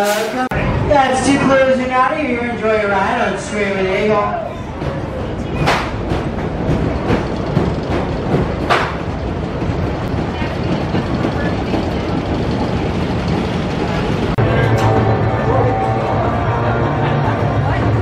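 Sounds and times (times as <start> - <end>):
roller coaster rumbling on track: 0.0 - 18.0
roller coaster track clacks: 0.0 - 18.0.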